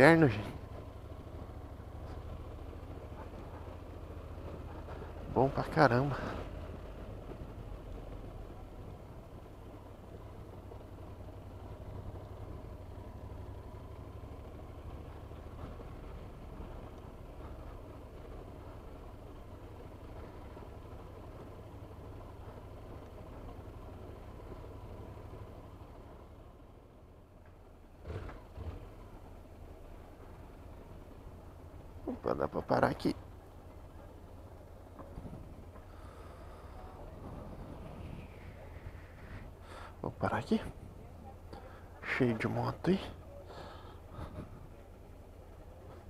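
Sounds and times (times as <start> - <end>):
tyres rumbling on cobblestones: 0.0 - 46.0.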